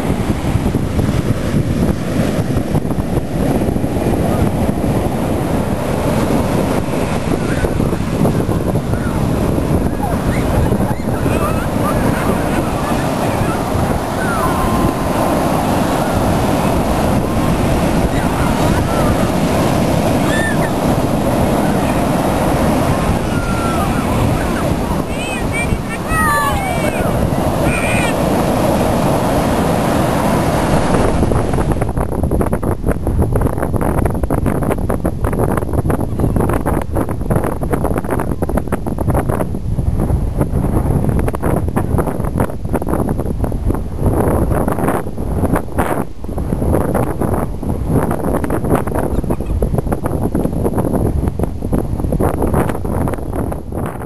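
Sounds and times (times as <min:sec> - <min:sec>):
ocean surf washing in: 0:00.0 - 0:54.0
wind buffeting microphone: 0:00.0 - 0:54.0.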